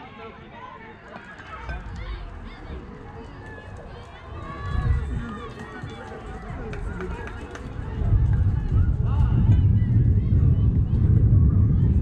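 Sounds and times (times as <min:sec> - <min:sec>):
people calling out and chattering: 0:00.0 - 0:12.0
wind rumbling on microphone: 0:01.6 - 0:12.0.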